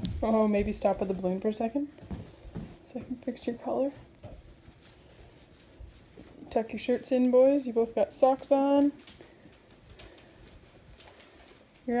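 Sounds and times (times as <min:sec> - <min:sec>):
soft low thumps: 0:00.0 - 0:04.6
fabric rustling: 0:00.0 - 0:12.0.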